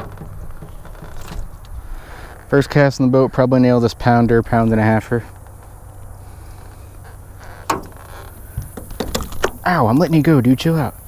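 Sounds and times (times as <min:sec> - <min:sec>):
low background rumble: 0:00.0 - 0:10.2.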